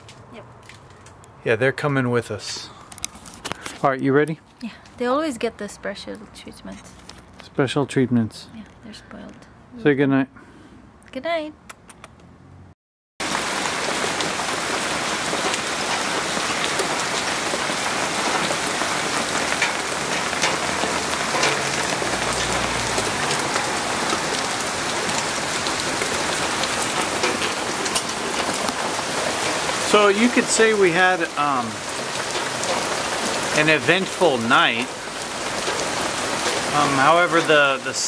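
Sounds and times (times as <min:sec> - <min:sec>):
raindrop hits: 0:13.2 - 0:38.0
steady rain falling: 0:13.2 - 0:38.0.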